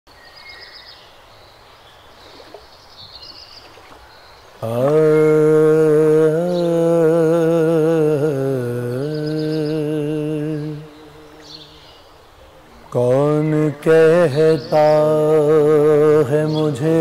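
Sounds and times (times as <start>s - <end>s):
birds chirping: 0.1s - 17.0s
man singing a held note: 4.6s - 11.7s.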